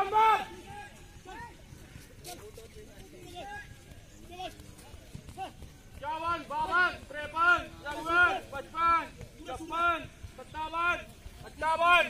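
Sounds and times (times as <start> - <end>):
man shouting loudly: 0.0 - 1.5, 5.4 - 11.0, 11.6 - 12.0
barefoot footfalls on dirt: 0.0 - 12.0.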